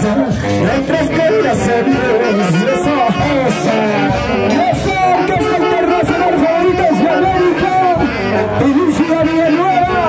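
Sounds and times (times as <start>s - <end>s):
band playing dance music: 0.0s - 10.0s.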